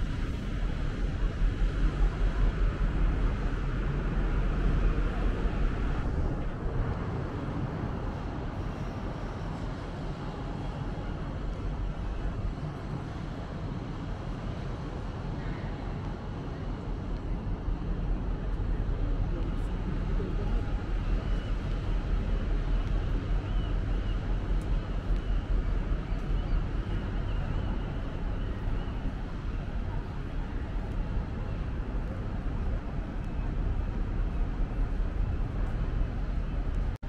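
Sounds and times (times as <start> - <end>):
low city rumble: 0.0 - 37.0
faint voices: 15.0 - 37.0.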